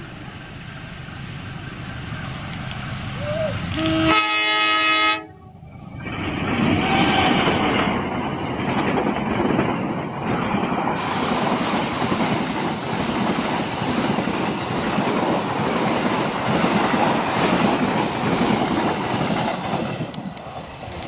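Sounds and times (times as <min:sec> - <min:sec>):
train wheels rushing on rails: 0:00.0 - 0:21.0.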